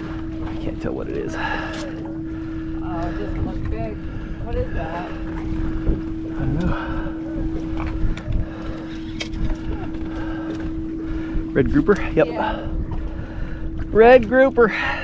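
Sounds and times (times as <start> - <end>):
boat engine idling: 0.0 - 15.0
wind on microphone: 0.0 - 15.0.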